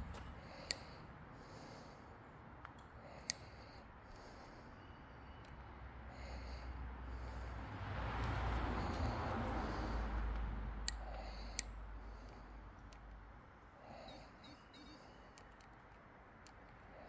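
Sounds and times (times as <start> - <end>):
bird chirps: 13.9 - 15.4.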